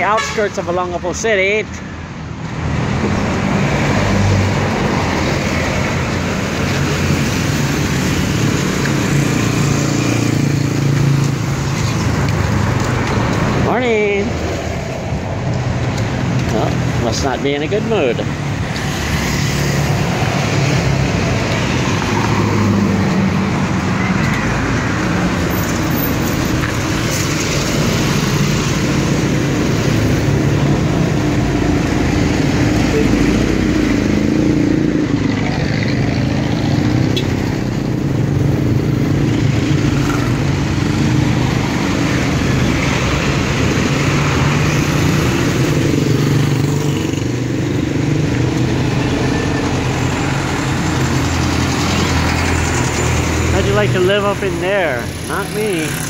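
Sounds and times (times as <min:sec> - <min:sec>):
cars passing: 0:00.0 - 0:56.0
bus engine passing: 0:14.3 - 0:56.0.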